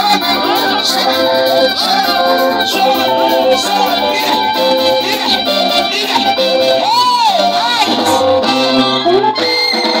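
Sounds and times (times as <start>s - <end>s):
woman singing into microphone: 0.0s - 9.4s
live band with plucked guitar: 0.0s - 10.0s.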